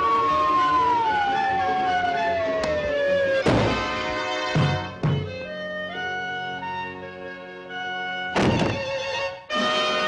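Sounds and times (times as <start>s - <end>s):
cartoon orchestral music: 0.0s - 10.0s
loud thunk sound effect: 3.4s - 4.0s, 8.4s - 8.9s.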